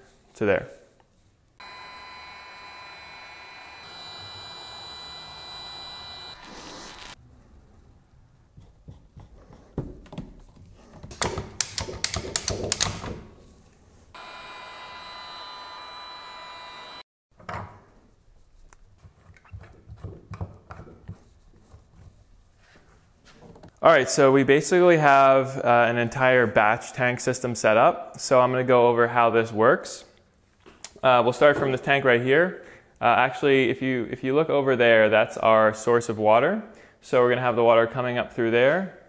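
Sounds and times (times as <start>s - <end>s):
heat gun fan whine: 1.6s - 7.2s, 14.2s - 17.0s
plastic fittings clicking and knocking: 8.6s - 13.1s.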